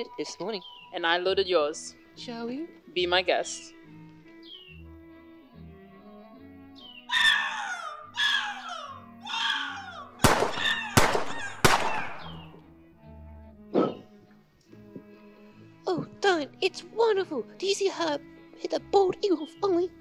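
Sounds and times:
background music: 0.0s - 20.0s
bird of prey screech: 7.1s - 12.5s
gunshot effects: 10.2s - 12.4s.

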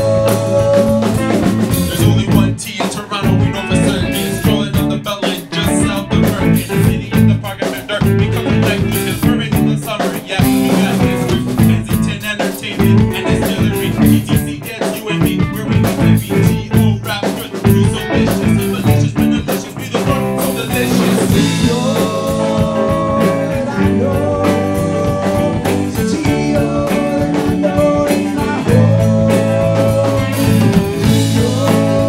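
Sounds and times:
drum kit steady beat: 0.0s - 32.0s
electric guitar: 0.0s - 32.0s.

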